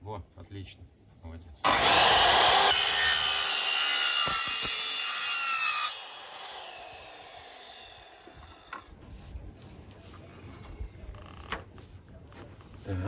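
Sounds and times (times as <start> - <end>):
saw blade spinning down: 1.6 - 8.9
mitre saw cutting: 1.6 - 9.0.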